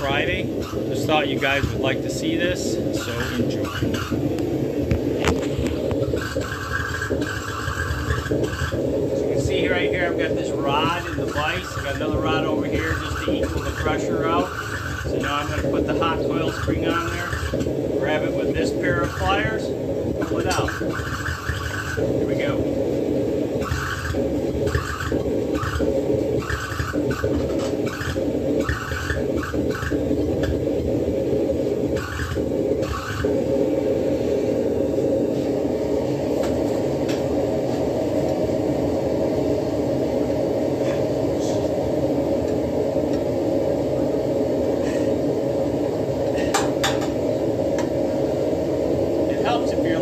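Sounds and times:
low machine roar: 0.0s - 50.0s.

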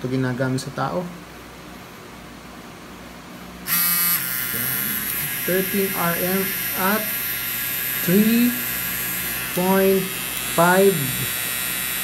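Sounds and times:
tattoo machine buzzing: 3.6s - 12.0s.

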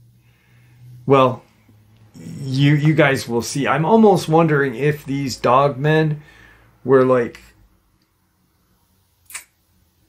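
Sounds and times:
sharp click: 9.2s - 9.6s.

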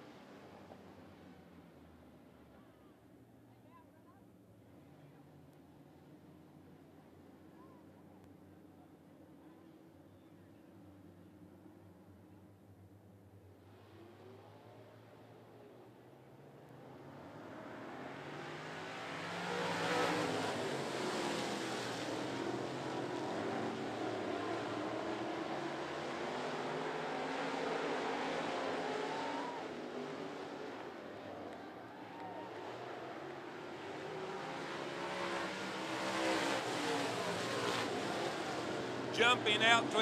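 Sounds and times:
race car engines passing: 13.6s - 40.0s.

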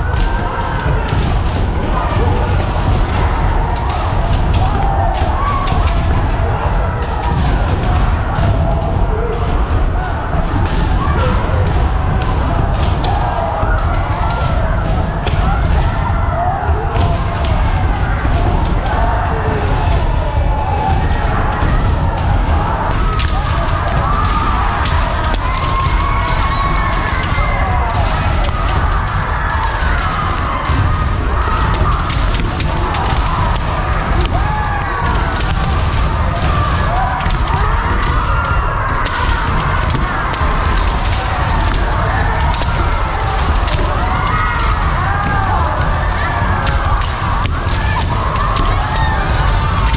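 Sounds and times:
bamboo swords clacking: 22.8s - 49.9s.

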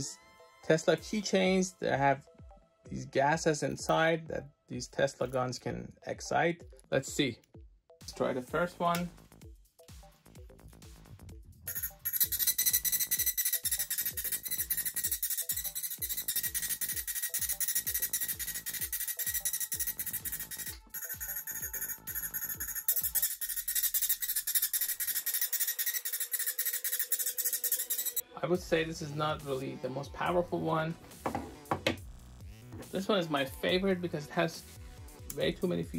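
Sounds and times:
electronic music with steady beat: 11.7s - 28.2s.

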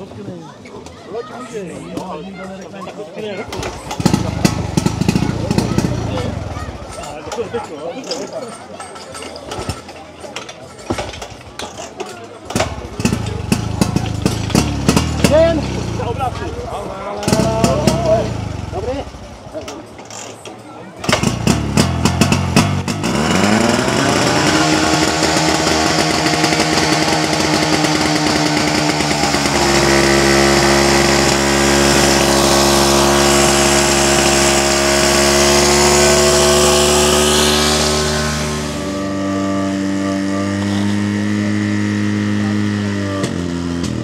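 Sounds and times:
fire pump engine running: 21.0s - 44.0s.

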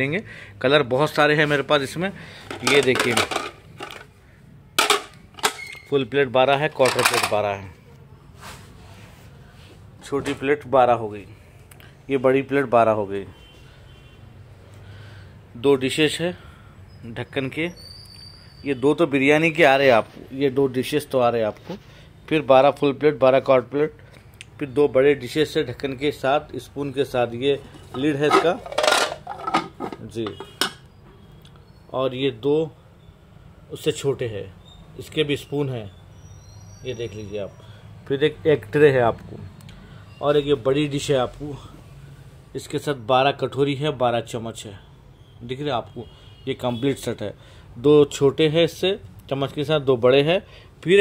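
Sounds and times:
plates clacking: 2.4s - 4.1s, 4.8s - 5.8s, 6.7s - 7.4s, 27.6s - 30.9s.

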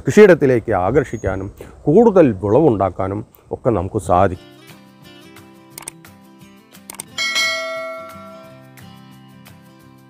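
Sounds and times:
soft background music: 3.9s - 10.0s
quick clicks: 5.7s - 6.0s, 6.9s - 7.1s
bright bell-like chime: 7.2s - 8.8s.

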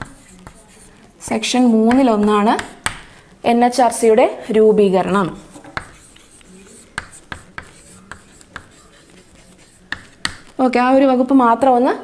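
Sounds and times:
chalk writing on blackboard: 0.0s - 3.2s, 4.3s - 10.6s.

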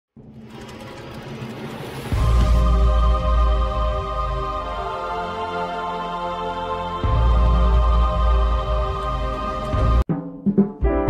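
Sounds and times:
rapidly fluttering synthetic noise: 0.2s - 4.6s.

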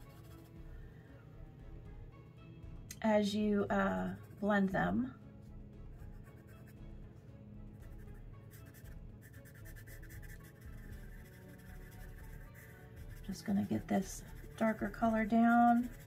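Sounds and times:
pencil scratching on paper: 0.0s - 0.5s, 6.1s - 6.8s, 7.9s - 16.0s
faint background music: 0.0s - 16.0s.

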